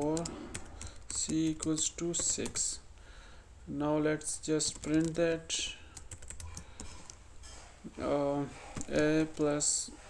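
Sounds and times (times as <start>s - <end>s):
keyboard typing: 0.0s - 2.8s, 4.6s - 7.2s, 8.6s - 9.6s.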